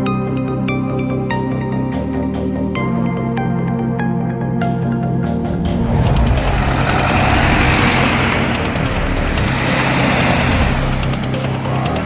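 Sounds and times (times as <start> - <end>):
background music: 0.0 - 12.0
fire engine driving past: 5.4 - 12.0.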